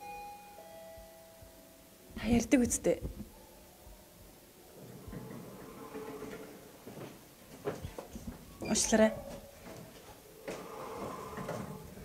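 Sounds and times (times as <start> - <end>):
elevator two-note chime: 0.0 - 1.5.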